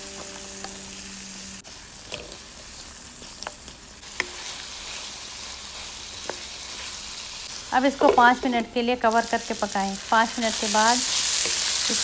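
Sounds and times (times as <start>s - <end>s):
vegetables sizzling in oil: 0.0s - 12.0s
spatula scraping and tapping pan: 2.1s - 5.1s, 5.8s - 6.9s.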